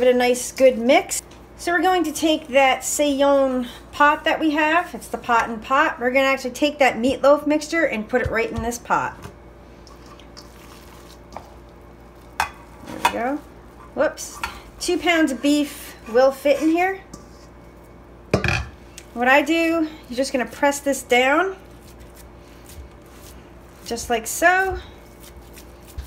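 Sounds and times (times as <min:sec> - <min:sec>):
low steady hum: 0:00.0 - 0:26.0
meat mixture squishing into pan: 0:09.8 - 0:15.3, 0:21.6 - 0:26.0.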